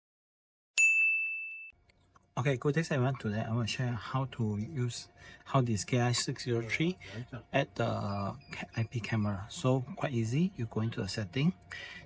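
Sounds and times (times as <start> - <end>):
high ding: 0.8 - 1.8.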